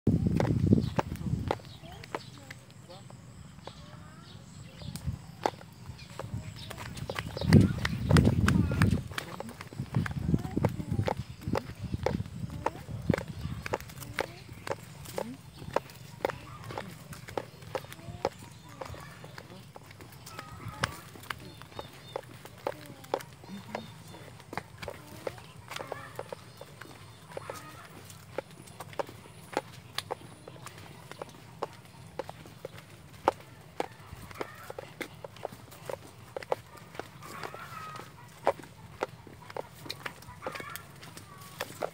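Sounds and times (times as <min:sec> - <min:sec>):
footsteps on concrete: 0:00.1 - 0:41.9.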